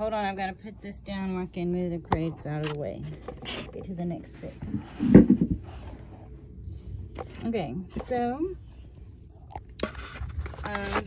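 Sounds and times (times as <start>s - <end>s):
faint shuffling: 1.1s - 9.4s
objects knocking and scraping: 2.1s - 6.2s, 9.4s - 11.0s.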